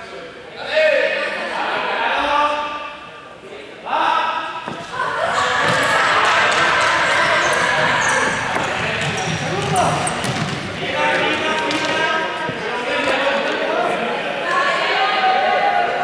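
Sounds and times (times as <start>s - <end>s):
footfalls on hall floor: 4.6s - 13.3s
students shouting together: 4.9s - 10.0s.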